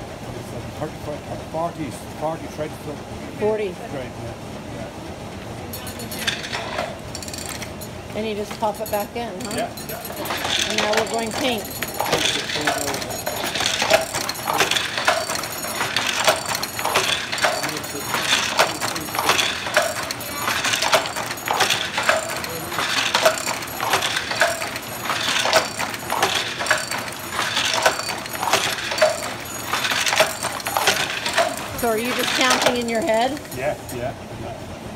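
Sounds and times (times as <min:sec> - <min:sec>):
handloom wooden clacks: 0:08.5 - 0:33.6.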